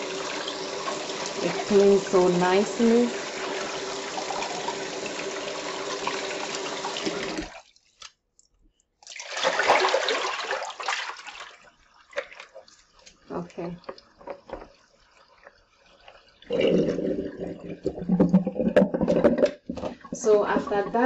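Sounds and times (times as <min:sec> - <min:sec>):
faucet running into plastic basin: 0:00.0 - 0:08.1, 0:09.0 - 0:21.0
splashing water: 0:09.0 - 0:21.0
water drips: 0:11.2 - 0:21.0.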